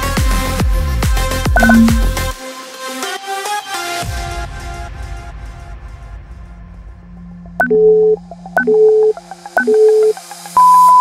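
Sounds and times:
click: 1.6 - 2.1
short electronic beeps: 1.6 - 2.2, 7.6 - 11.0.

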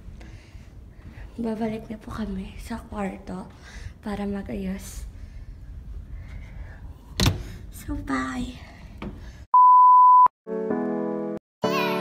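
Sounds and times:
high-pitched electronic beep: 9.6 - 10.3.

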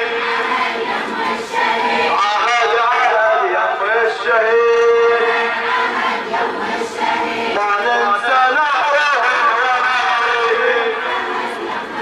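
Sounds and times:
crowd: 0.0 - 12.0
melodic chanting: 0.0 - 12.0.

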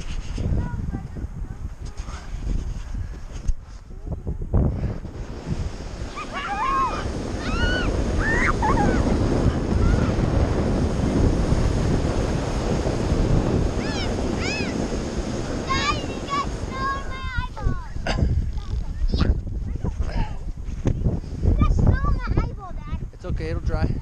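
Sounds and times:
wind buffeting microphone: 0.0 - 24.0
snow tubes sliding over snow: 4.7 - 20.8
riders yelping: 6.1 - 9.1, 13.8 - 14.8.

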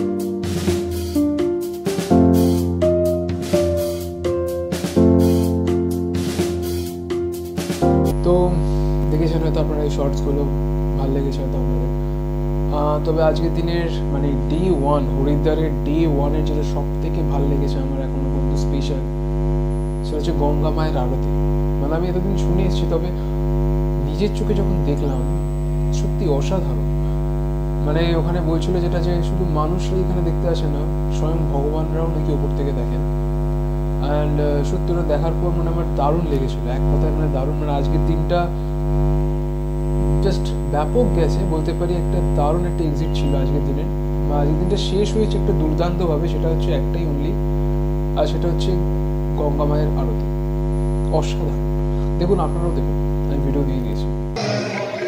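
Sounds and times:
electrical mains hum: 7.9 - 55.0
speech: 8.1 - 12.0, 12.7 - 19.1, 20.0 - 23.2, 24.0 - 25.3, 25.9 - 26.8, 27.8 - 33.0, 34.0 - 38.6, 40.2 - 47.4, 48.2 - 50.3, 51.1 - 51.6, 52.2 - 55.0.

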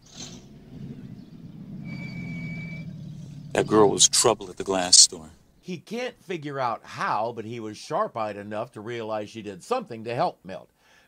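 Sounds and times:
vehicle engine idling: 0.0 - 5.6.

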